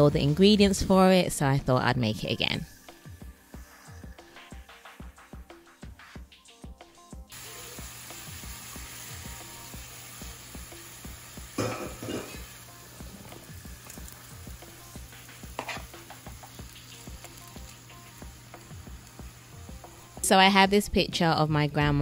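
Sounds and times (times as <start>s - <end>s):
shrimp sizzling in frying pan: 2.7s - 5.4s, 7.3s - 20.4s
wooden spatula stirring: 15.6s - 15.9s.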